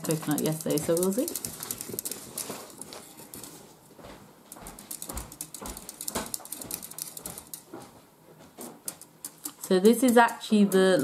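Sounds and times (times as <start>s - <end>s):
whisk scraping inside mug: 0.0s - 3.6s.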